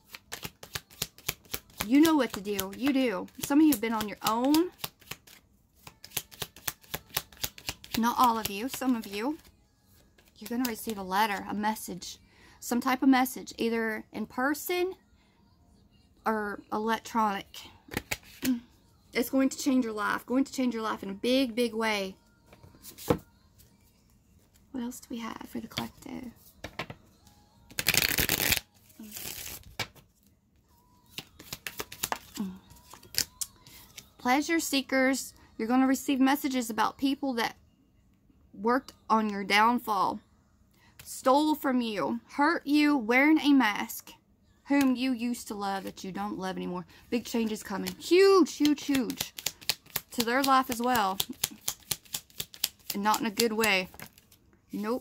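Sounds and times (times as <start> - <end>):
cards being shuffled: 0.0 - 11.4, 17.9 - 18.6, 27.7 - 30.1, 31.0 - 34.1, 47.3 - 54.4.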